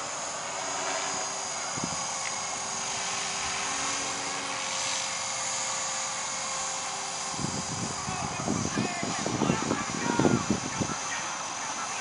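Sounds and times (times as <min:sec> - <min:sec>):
rc helicopter motor whine: 0:00.0 - 0:12.0.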